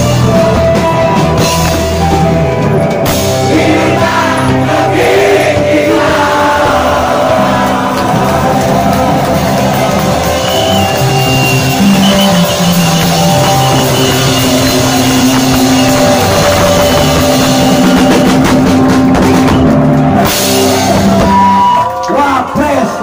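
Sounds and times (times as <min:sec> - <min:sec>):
punk rock band playing: 0:00.0 - 0:23.0.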